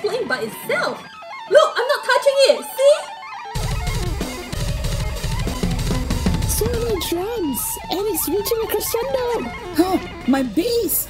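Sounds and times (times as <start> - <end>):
electric guitar rock music: 3.2 - 10.4
bass guitar: 3.6 - 7.7
drums: 3.6 - 11.0.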